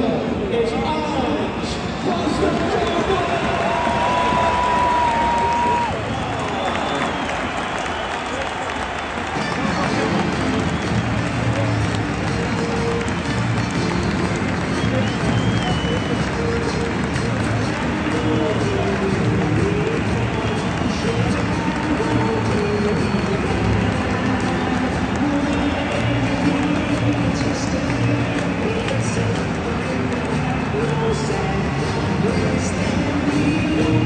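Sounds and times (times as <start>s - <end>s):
stadium crowd noise: 0.0s - 34.0s
music over public address system: 9.1s - 34.0s.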